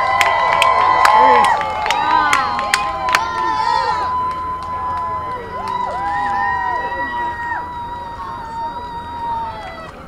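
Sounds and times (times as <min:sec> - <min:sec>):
crowd cheering and shouting: 0:00.0 - 0:10.0
steady high-pitched tone: 0:01.2 - 0:10.0.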